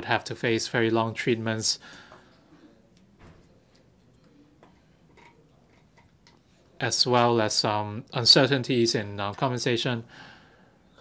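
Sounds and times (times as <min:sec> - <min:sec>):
man talking: 0:00.0 - 0:01.9, 0:06.8 - 0:10.1.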